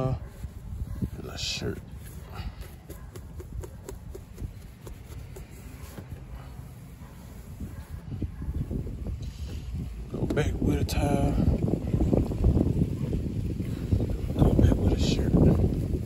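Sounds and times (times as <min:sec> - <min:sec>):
cloth wiping glass: 0:00.0 - 0:10.0.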